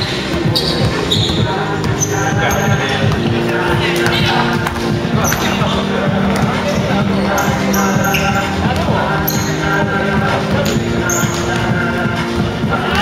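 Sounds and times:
basketball bouncing on wooden floor: 0:00.0 - 0:03.4
music: 0:00.0 - 0:13.0
voices: 0:00.0 - 0:13.0.

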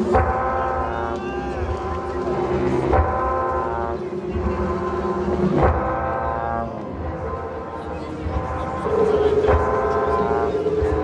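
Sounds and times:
rock band playing droning jam: 0:00.0 - 0:11.0.

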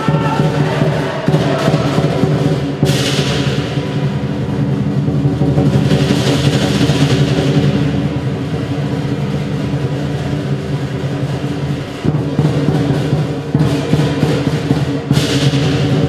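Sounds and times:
big drum rumbling roll: 0:00.0 - 0:16.0
cymbal crashes: 0:00.0 - 0:16.0.

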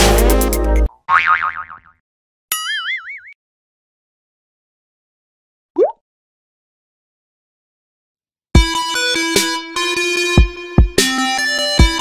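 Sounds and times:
cartoon boing sound effect: 0:01.1 - 0:02.0, 0:02.6 - 0:03.4, 0:05.8 - 0:06.0.

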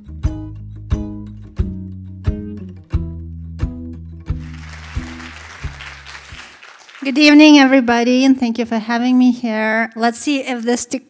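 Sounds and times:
plucked bass notes: 0:00.0 - 0:04.4
audience applause: 0:04.4 - 0:07.7.

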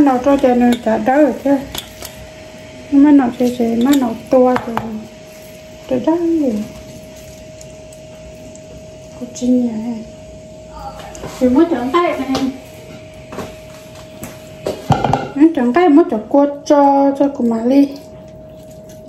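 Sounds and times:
faint high hum: 0:00.0 - 0:19.0
voices speaking: 0:02.9 - 0:05.2, 0:09.2 - 0:13.1.

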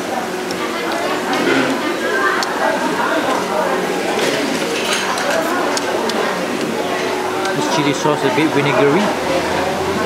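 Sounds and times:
people chattering: 0:00.0 - 0:10.0
tableware clinking: 0:04.2 - 0:05.8.

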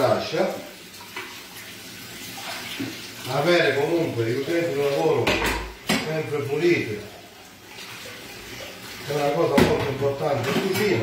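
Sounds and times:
utensils being rinsed: 0:00.0 - 0:11.0
tap running into metal sink: 0:05.2 - 0:06.2, 0:09.5 - 0:11.0.

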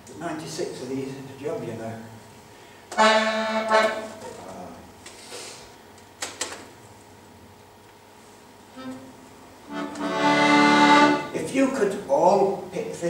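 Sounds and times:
accordion clicks: 0:02.9 - 0:04.4, 0:09.7 - 0:11.2
accordion chord: 0:02.9 - 0:04.5, 0:08.6 - 0:11.4.

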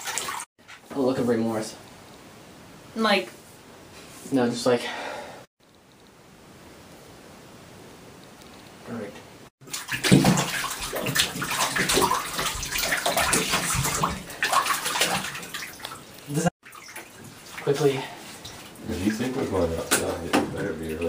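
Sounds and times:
water splashing in a bathtub: 0:00.0 - 0:00.5, 0:09.6 - 0:21.0.

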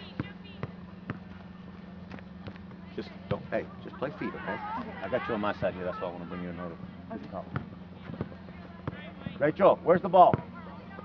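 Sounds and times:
faint distant voices: 0:00.0 - 0:11.0
steady low hum: 0:00.0 - 0:11.0.

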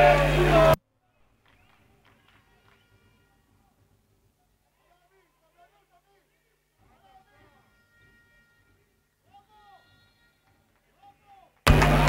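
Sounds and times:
dense crowd noise: 0:00.0 - 0:00.8, 0:11.7 - 0:12.0
steady low hum: 0:00.0 - 0:00.8.

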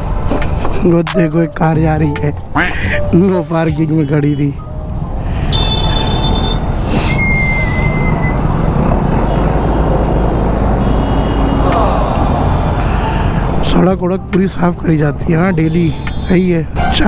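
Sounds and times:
low rumble of traffic engines: 0:00.0 - 0:17.0.

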